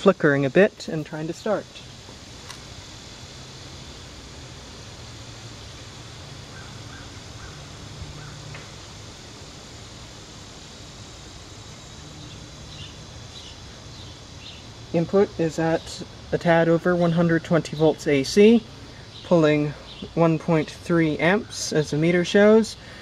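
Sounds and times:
outdoor background noise: 0.0s - 23.0s
steady low hum: 0.0s - 23.0s.

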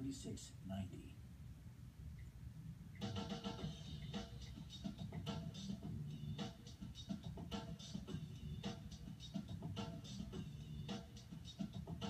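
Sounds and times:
music from television speakers: 2.9s - 12.0s.

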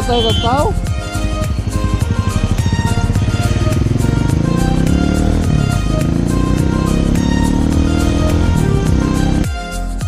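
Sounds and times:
motorcycle engine pulsing: 0.0s - 9.4s
background music: 0.0s - 10.0s.

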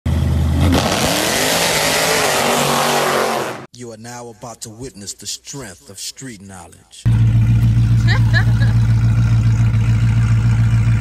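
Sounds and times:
engine revving loudly: 0.1s - 3.7s.

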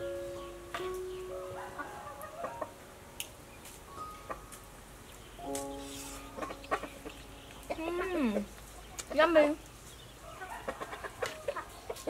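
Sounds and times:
soft background music: 0.0s - 9.6s
chickens clucking: 0.8s - 2.8s, 4.1s - 12.0s.

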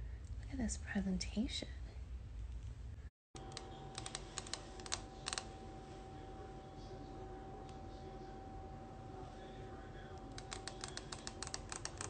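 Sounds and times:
faint steady hum: 0.0s - 12.0s
fingernails tapping: 10.3s - 12.0s.

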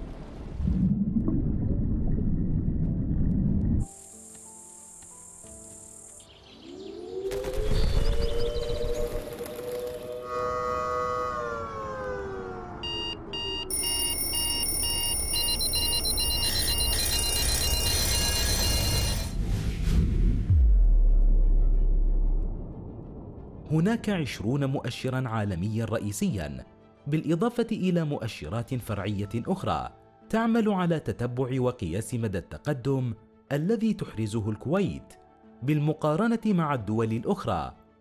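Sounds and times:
music: 3.8s - 38.0s
electronic beeps: 12.8s - 19.4s.

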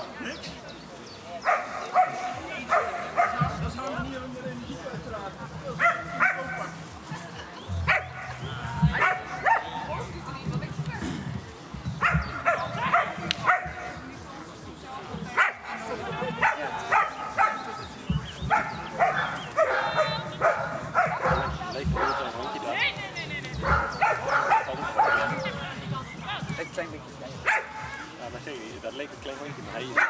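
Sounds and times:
dog barking: 1.4s - 3.6s, 5.8s - 6.8s, 7.8s - 8.3s, 9.0s - 9.8s, 12.0s - 14.0s, 15.4s - 15.8s, 16.4s - 17.7s, 18.4s - 22.3s, 23.6s - 25.5s, 27.4s - 27.8s.

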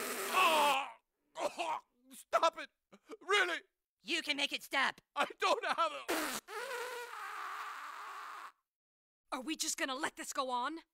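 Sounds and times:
cartoon fart sound effect: 0.0s - 0.6s, 6.1s - 8.6s.

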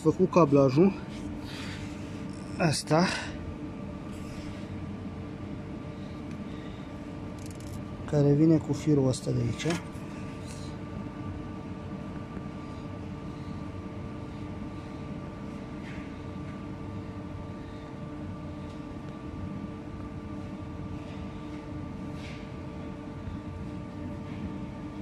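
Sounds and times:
machine hum: 0.0s - 25.0s.

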